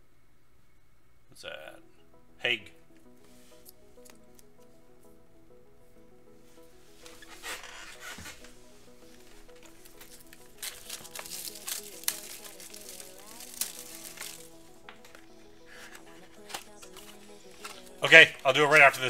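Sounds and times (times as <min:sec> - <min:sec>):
background music: 0:01.3 - 0:19.0
cards rustling: 0:06.9 - 0:19.0
wrapper crinkling and tearing: 0:07.0 - 0:19.0.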